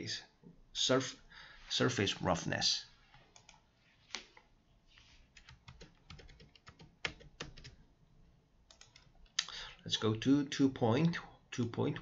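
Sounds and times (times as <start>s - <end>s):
computer keyboard clicking: 5.4s - 7.8s, 8.7s - 9.2s.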